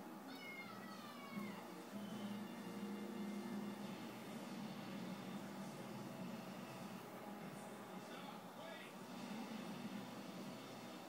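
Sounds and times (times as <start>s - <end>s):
cat meowing: 0.2s - 1.8s
steady low hum: 1.4s - 11.0s.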